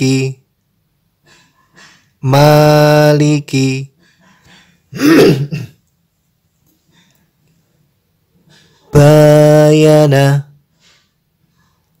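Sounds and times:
person clearing throat: 4.2 - 5.8.

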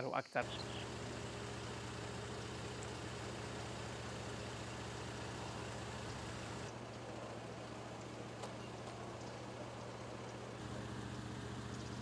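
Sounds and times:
low mechanical hum: 0.4 - 12.0.

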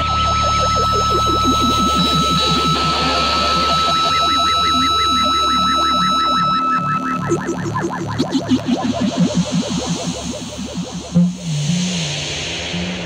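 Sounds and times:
swooping pitch warbles: 0.0 - 11.5
high drone: 0.0 - 13.0
low drone: 0.0 - 13.0.

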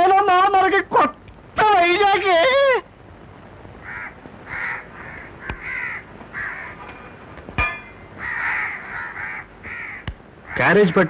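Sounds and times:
harsh bird calls: 3.8 - 7.3, 7.9 - 11.0.

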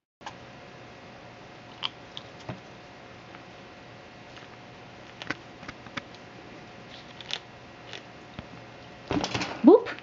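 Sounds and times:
squirrel gnawing a nut: 1.7 - 2.4, 4.3 - 8.9.

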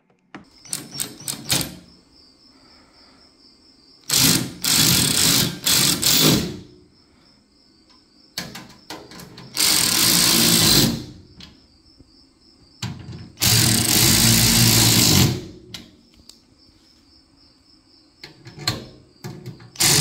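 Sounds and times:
cordless ratchet running: 4.1 - 6.5, 9.6 - 10.9, 13.4 - 15.4, 19.8 - 20.0.

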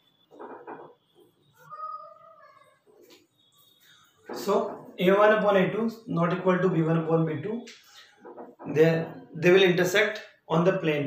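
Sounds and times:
high-pitched animal-like call: 1.6 - 3.0.

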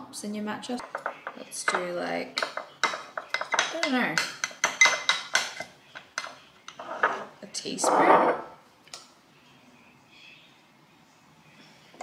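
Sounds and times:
metal spoon clinking against glass: 0.8 - 6.4.

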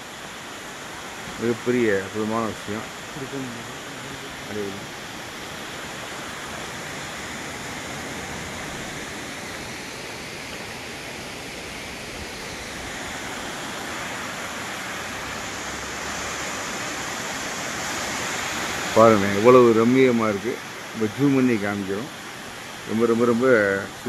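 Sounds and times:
waterfall rushing: 0.0 - 24.0.

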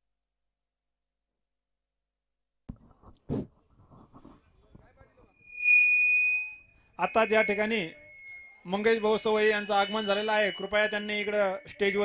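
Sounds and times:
microphone feedback whistle: 5.3 - 12.0.

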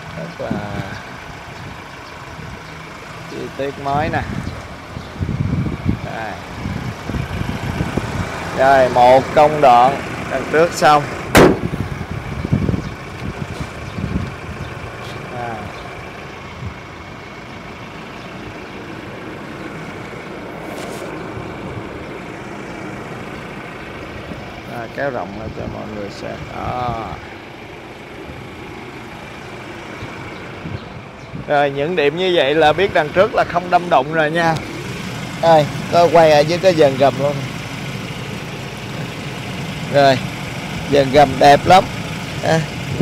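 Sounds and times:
vehicle engine and traffic noise: 0.0 - 43.0
sharp click: 11.4 - 11.7
low voices: 24.7 - 27.5.

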